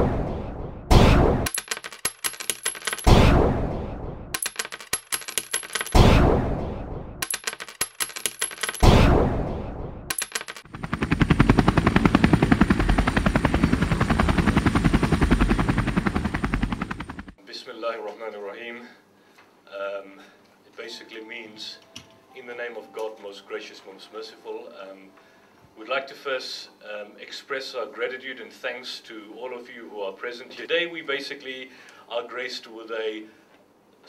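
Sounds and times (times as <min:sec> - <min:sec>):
heavy booms: 0:00.0 - 0:01.5, 0:03.1 - 0:04.4, 0:06.0 - 0:07.2, 0:08.8 - 0:10.1
fast even rattle: 0:01.4 - 0:03.2, 0:04.3 - 0:06.0, 0:07.2 - 0:08.9, 0:10.1 - 0:13.1
quick clicks: 0:01.4 - 0:03.2, 0:04.3 - 0:06.0, 0:07.2 - 0:08.9, 0:10.1 - 0:10.7.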